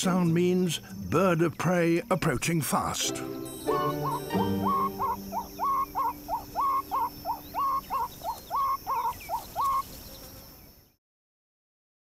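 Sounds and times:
meerkat alarm calls: 3.7 - 9.8.

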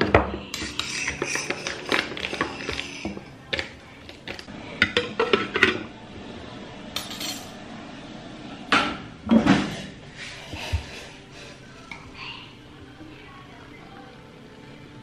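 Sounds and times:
spoons and dishes clinking: 0.0 - 5.8, 7.0 - 7.6.

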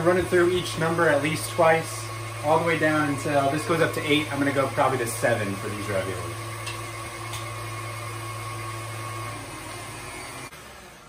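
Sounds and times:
stand mixer motor humming: 0.0 - 11.0.

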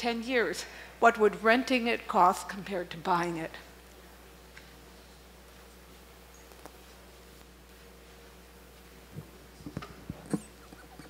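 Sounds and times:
microphone handling bumps: 9.1 - 10.8.

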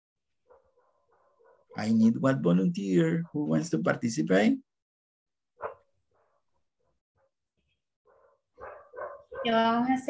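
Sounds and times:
dog barking faintly: 5.6 - 7.3, 8.1 - 9.7.

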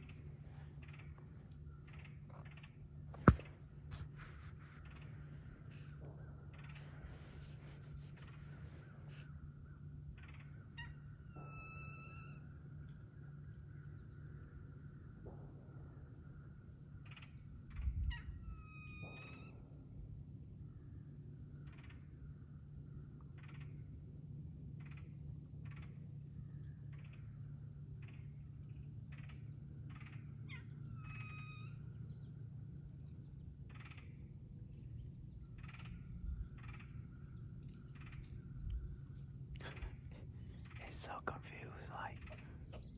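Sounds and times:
steady low hum: 0.0 - 42.9
birds calling: 29.0 - 42.9.

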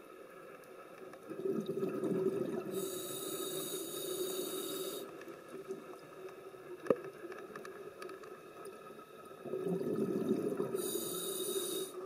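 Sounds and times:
low bubbling rush: 1.3 - 2.9, 9.4 - 11.0
steady hiss: 2.6 - 6.8, 10.5 - 12.0
diver breathing through regulator: 2.7 - 5.1, 10.8 - 12.0.

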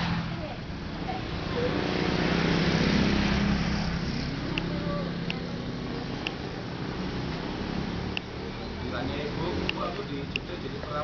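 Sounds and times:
vehicle engine passing: 0.0 - 11.0.

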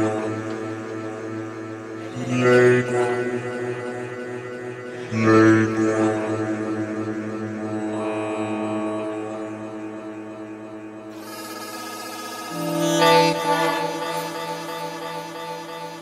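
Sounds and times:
drone-like synthesizer tones: 0.0 - 16.0
bright synthesizer chord: 11.0 - 16.0.

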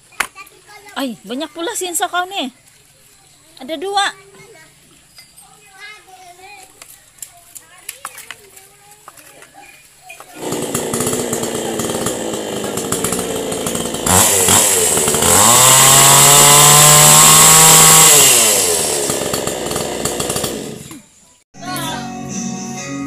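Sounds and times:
chainsaw idling and revving: 10.3 - 21.2.

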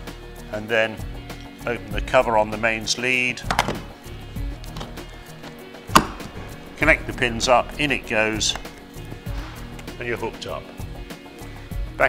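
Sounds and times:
soft background music: 0.0 - 12.0
plug clicking into socket: 3.5 - 3.9.

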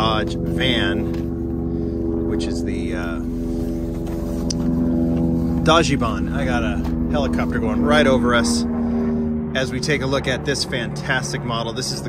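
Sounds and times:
helicopter flying overhead: 0.0 - 12.0.

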